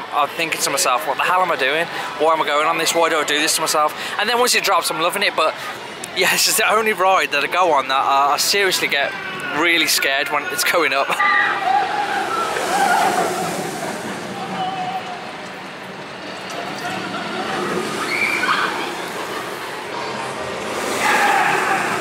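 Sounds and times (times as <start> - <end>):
people talking: 0.2 - 11.2
roller coaster train on track: 8.8 - 22.0
outdoor rushing noise: 11.6 - 22.0.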